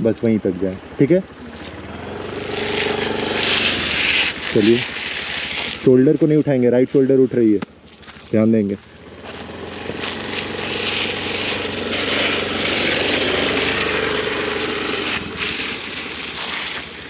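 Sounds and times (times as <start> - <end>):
scooter engine droning: 0.0 - 17.0.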